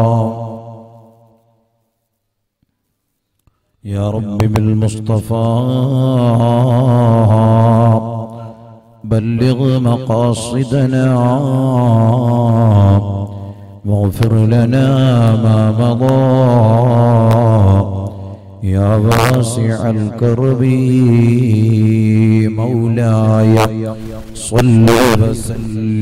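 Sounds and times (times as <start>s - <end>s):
man chanting: 0.0s - 1.1s, 3.8s - 26.0s.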